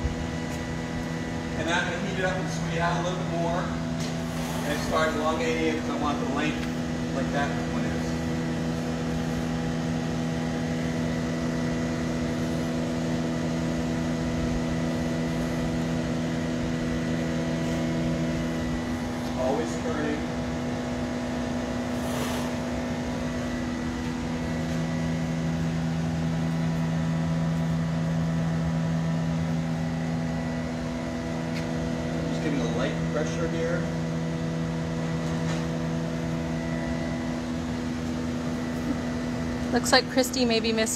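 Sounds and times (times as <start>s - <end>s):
deep layered hum: 0.0s - 40.9s
gas furnaces and blowers roaring: 0.0s - 40.9s.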